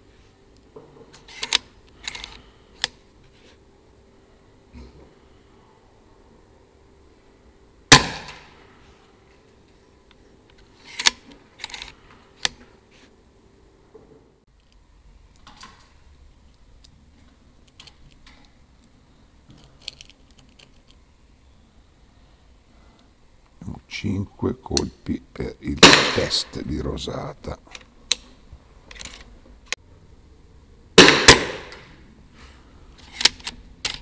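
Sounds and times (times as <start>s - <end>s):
air rifle shot: 7.9s - 8.5s, 25.8s - 26.4s, 31.0s - 31.9s.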